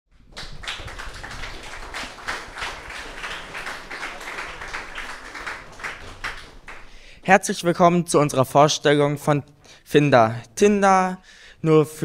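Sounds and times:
audience applause: 0.2s - 7.1s.

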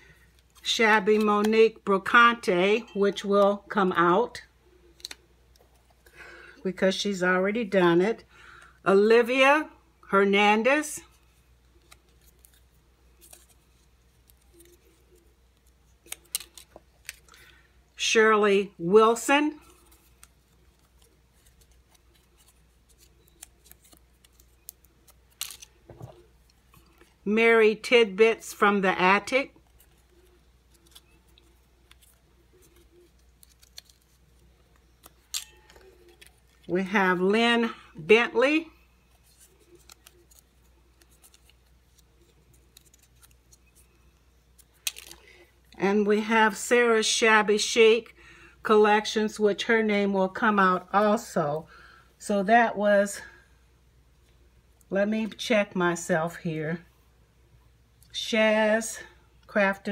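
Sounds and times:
low steady hum: 0.0s - 59.9s
paper slip crinkling: 11.2s - 17.6s, 19.6s - 27.2s, 29.6s - 36.8s, 39.0s - 45.4s.

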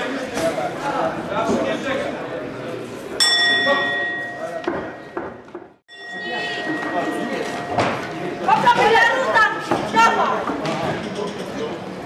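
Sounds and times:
boxing ring bell ringing: 3.2s - 5.0s, 5.9s - 9.3s.

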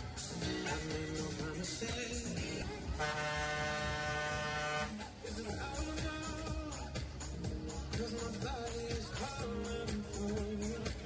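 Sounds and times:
fairground ride music with beat: 0.0s - 11.0s
steady horn-like tone: 2.9s - 5.1s.

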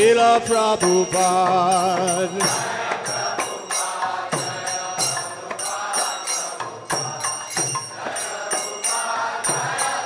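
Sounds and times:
hand cymbals ringing: 0.0s - 10.0s
group chanting: 2.4s - 10.0s.

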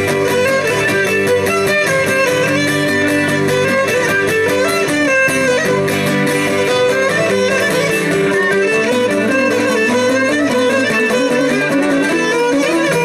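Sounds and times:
bowed string dance melody: 0.0s - 13.0s
strummed lute accompaniment: 0.0s - 13.0s.

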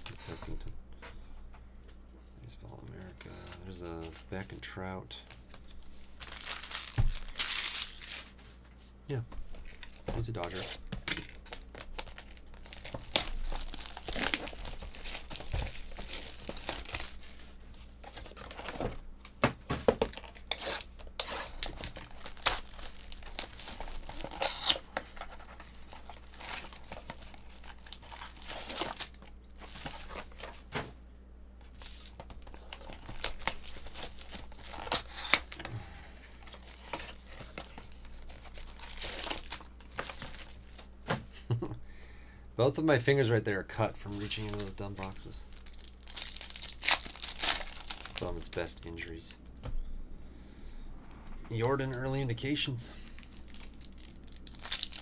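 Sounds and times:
plastic wrap tearing and crinkling: 3.5s - 4.5s, 5.2s - 8.6s, 9.5s - 18.9s, 20.0s - 30.7s, 31.7s - 35.7s, 36.4s - 40.9s, 44.0s - 49.0s, 51.6s - 55.0s.

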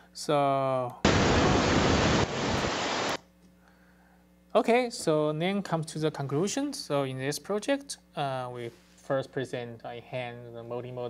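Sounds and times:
white noise rush: 1.0s - 3.2s.

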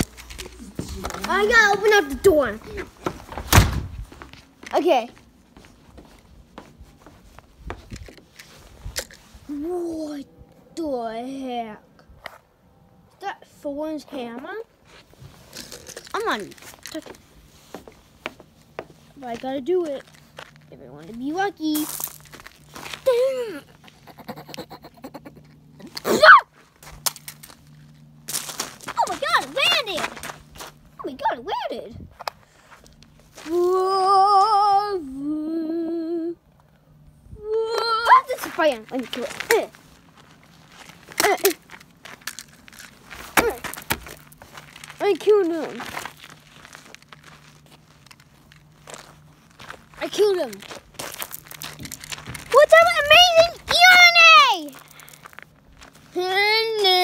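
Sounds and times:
high-pitched voice speaking: 29.0s - 30.1s, 52.5s - 54.8s
plastic scraping on pavement: 38.3s - 53.9s.

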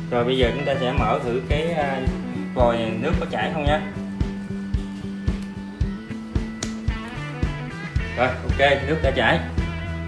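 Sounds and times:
guitar music with steady beat: 0.0s - 10.0s.

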